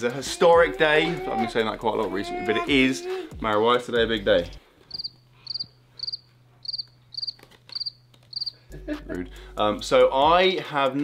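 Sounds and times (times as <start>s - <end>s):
cricket chirping: 4.9s - 8.6s.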